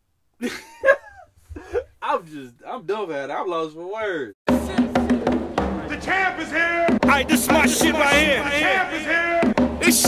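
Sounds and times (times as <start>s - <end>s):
man laughing: 0.4s - 2.3s.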